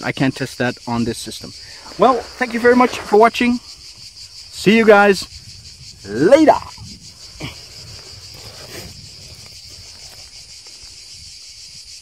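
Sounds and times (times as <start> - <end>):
insects singing: 0.0 - 12.0.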